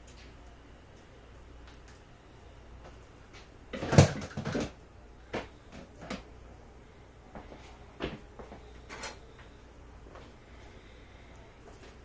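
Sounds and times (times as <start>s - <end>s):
plastic parts knocking and clicking: 3.8s - 4.8s.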